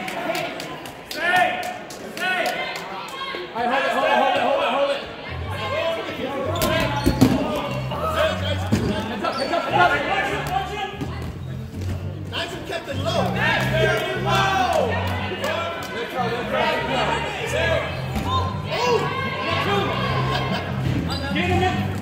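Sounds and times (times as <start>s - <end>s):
players' voices: 0.0s - 22.0s.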